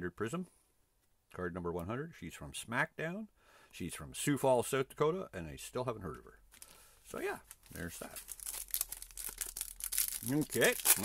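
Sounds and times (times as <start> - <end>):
foil wrapper crinkling and tearing: 6.6 - 11.0.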